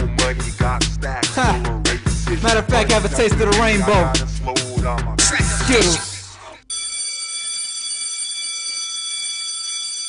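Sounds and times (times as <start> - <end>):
hip hop beat: 0.0 - 6.7
bell-like ringing tone: 6.7 - 10.0.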